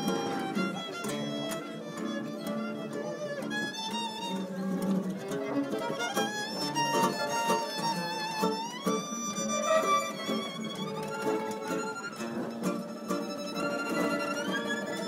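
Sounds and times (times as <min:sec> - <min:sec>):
acoustic guitars strumming: 0:00.0 - 0:15.0
violin melody with vibrato: 0:00.0 - 0:15.0.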